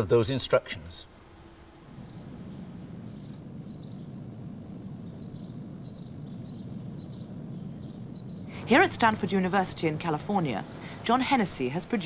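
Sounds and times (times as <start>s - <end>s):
steady low rumble: 1.1s - 12.0s
high bird chirps: 4.8s - 8.5s.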